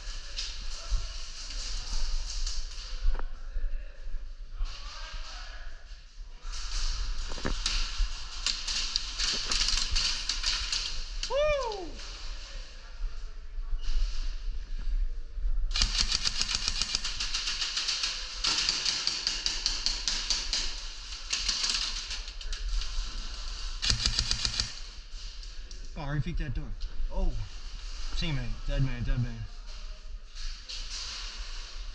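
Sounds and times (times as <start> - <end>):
airsoft guns firing bursts: 15.7 - 22.2, 23.8 - 25.0.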